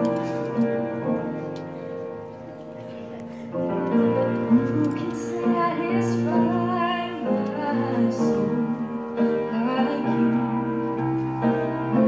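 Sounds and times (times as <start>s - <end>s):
sustained keyboard chords: 0.0s - 12.0s.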